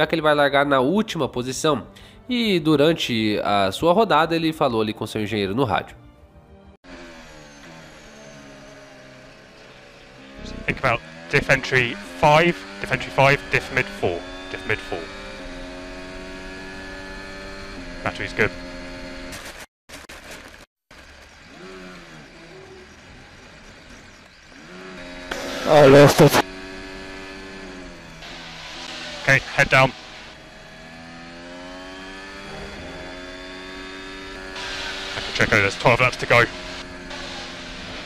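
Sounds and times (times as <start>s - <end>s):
racing car engine at low revs: 6.8s - 19.6s, 20.9s - 38.0s.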